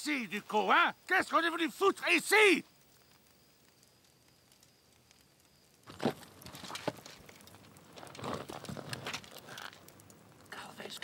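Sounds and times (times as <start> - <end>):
small ticks: 2.6 - 11.0.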